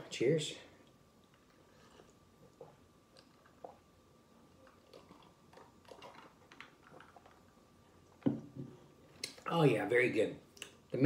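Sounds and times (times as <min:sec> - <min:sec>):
person drinking and swallowing: 0:01.2 - 0:03.9, 0:04.5 - 0:09.4.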